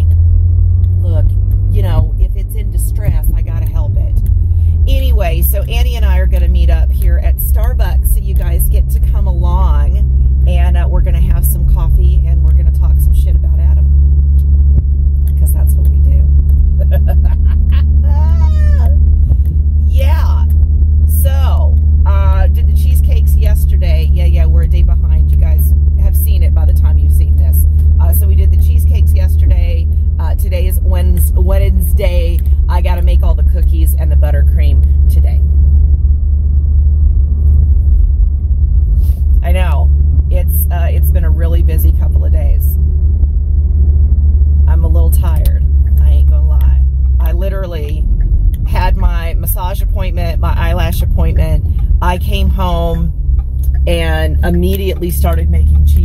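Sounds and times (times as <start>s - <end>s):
car cabin road rumble: 0.0s - 56.0s
woman talking: 1.0s - 4.2s, 4.8s - 13.9s, 15.3s - 19.0s, 19.8s - 35.5s, 39.4s - 42.8s, 44.7s - 56.0s.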